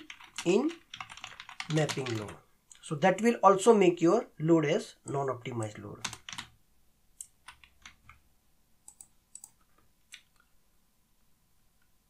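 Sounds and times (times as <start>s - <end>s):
keyboard and mouse clicks: 7.2s - 8.2s, 8.8s - 10.5s.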